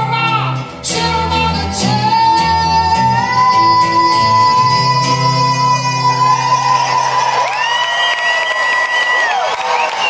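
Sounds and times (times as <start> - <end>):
audience cheering and clapping: 5.8 - 10.0
shrill whistle: 6.8 - 10.0.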